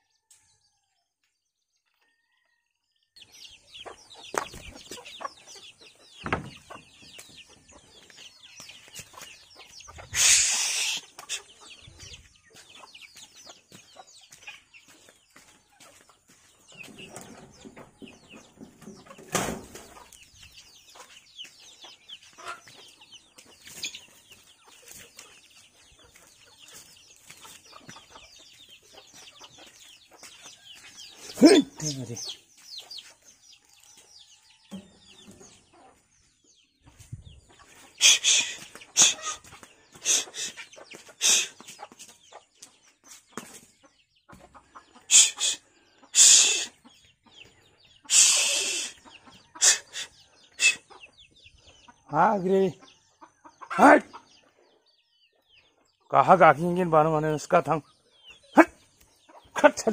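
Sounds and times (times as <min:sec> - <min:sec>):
chickens clucking: 0:01.8 - 0:59.9
sharp knocks: 0:06.2 - 0:06.6.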